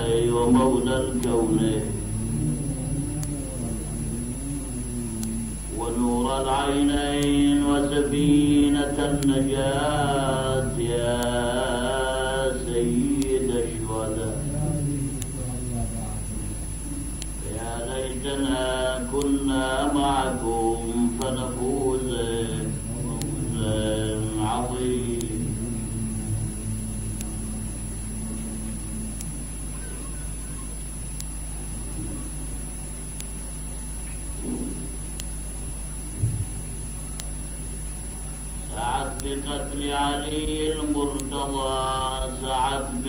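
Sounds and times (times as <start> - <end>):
man chanting: 0.0 - 29.2, 38.6 - 43.0
electrical hum: 0.0 - 43.0.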